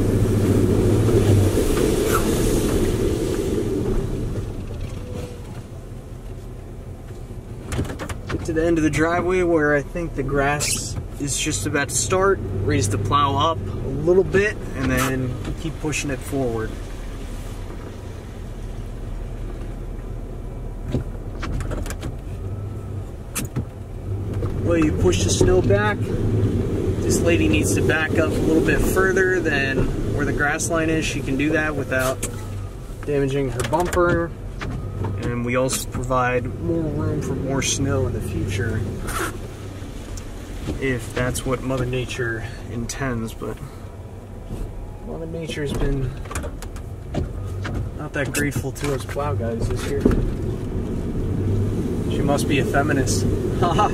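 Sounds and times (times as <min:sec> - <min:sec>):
truck engine rumbling: 0:00.0 - 0:53.9
sharp clicks and knocks: 0:07.0 - 0:08.6, 0:20.8 - 0:22.3, 0:23.3 - 0:25.6, 0:33.0 - 0:36.2, 0:45.7 - 0:50.8.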